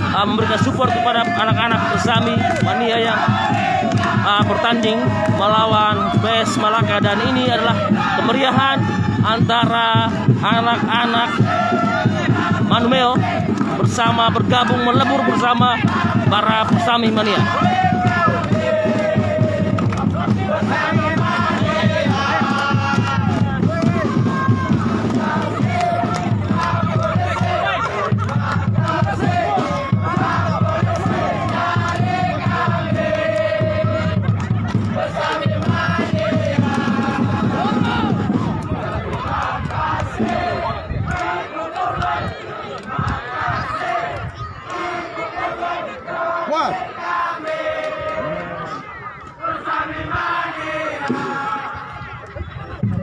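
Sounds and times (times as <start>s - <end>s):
people shouting: 0.0s - 52.1s
crowd chanting and singing: 0.0s - 53.0s.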